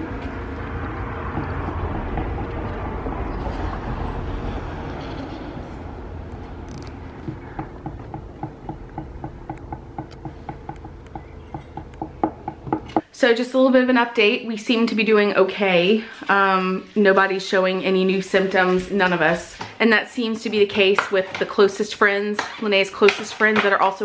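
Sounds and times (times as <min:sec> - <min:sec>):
vehicle passing rumble: 0:00.0 - 0:13.0.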